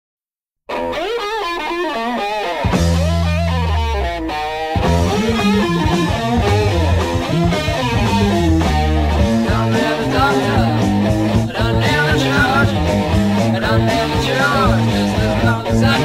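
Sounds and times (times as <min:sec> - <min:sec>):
blues rock band playing: 0:00.7 - 0:16.0
electric guitar bending notes: 0:00.7 - 0:16.0
heavy bass notes: 0:02.6 - 0:16.0.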